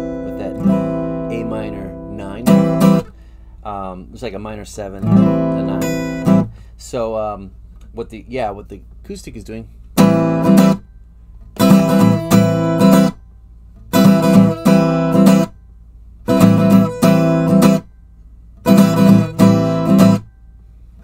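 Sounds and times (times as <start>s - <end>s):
acoustic guitar strumming: 0.0s - 6.7s, 10.0s - 15.6s, 16.2s - 20.5s.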